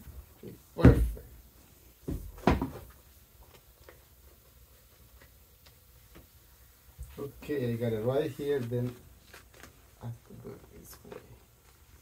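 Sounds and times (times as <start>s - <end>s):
vinyl sheet rustling: 2.4s - 12.0s
faint handling ticks: 7.1s - 11.9s.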